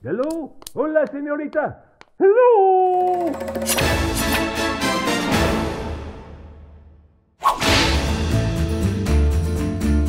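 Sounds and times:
credits music: 2.9 - 6.2.

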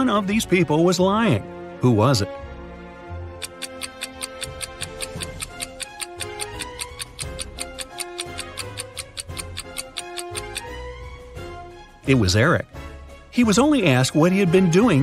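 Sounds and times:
soft background music: 0.0 - 15.0
stopwatch ticking: 3.4 - 10.7.

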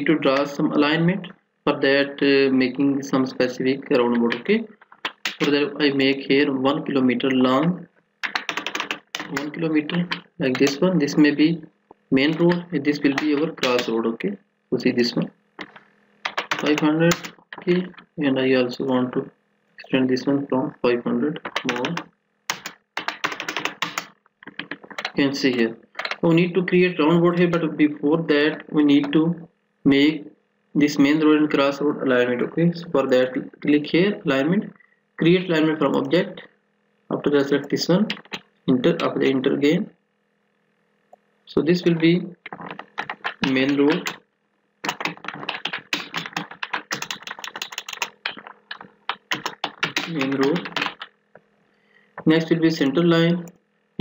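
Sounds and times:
computer keyboard typing: 4.3 - 5.6, 8.2 - 10.9, 12.3 - 13.9, 15.6 - 18.1, 21.4 - 26.2, 38.0 - 39.2, 42.4 - 44.2, 44.8 - 51.2
keyboard key clicks: 15.6 - 17.7.

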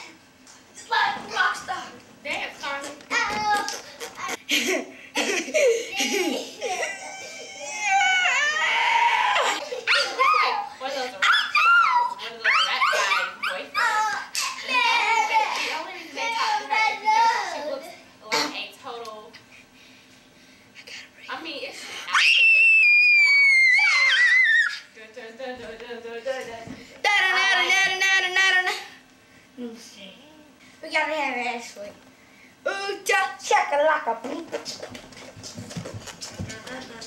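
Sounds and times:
boy wailing: 6.0 - 10.6, 22.1 - 24.8.

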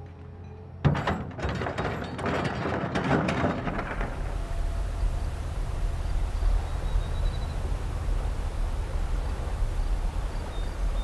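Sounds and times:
rocks clattering and grinding: 0.9 - 4.5
excavator bucket scooping rock: 0.9 - 4.6.

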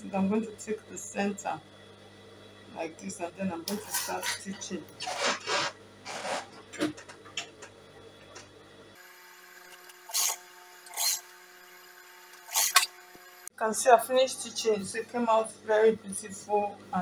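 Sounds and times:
faint steady hum: 9.9 - 17.0.

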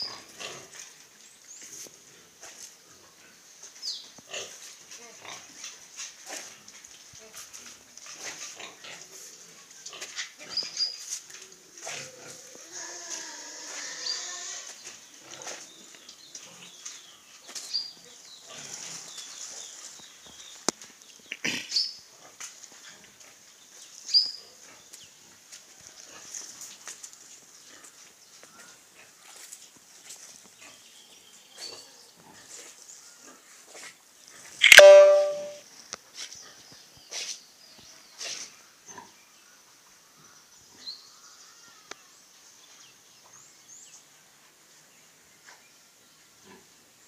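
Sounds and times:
farm animal call: 11.8 - 14.8
short high chirps: 34.6 - 35.6.

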